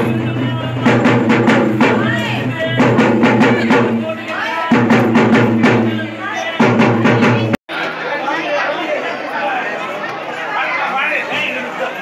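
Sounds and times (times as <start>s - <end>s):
music with drum beat: 0.0s - 7.6s
crowd chatter: 0.0s - 12.0s.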